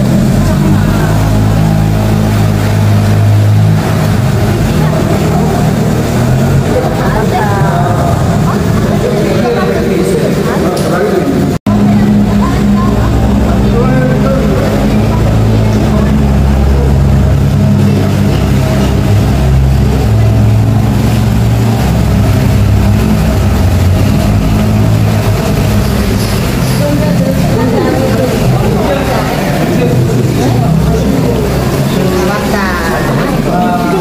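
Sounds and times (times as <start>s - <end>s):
boat motor droning: 0.0s - 34.0s.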